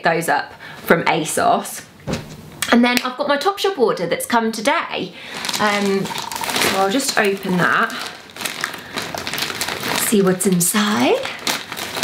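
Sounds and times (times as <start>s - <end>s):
packaging crinkling and rustling: 5.2s - 12.0s.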